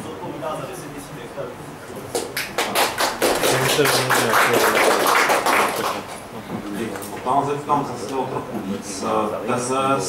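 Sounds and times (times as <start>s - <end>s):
audience applauding: 2.1s - 6.2s.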